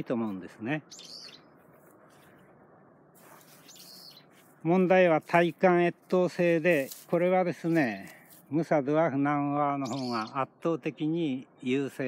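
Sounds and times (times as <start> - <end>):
bird chirp: 0.0 - 4.8, 9.6 - 11.6
faint outdoor background noise: 0.0 - 12.0.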